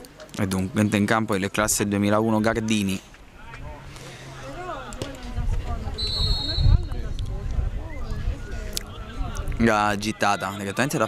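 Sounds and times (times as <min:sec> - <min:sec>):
wind rumble on microphone: 0:05.1 - 0:09.7.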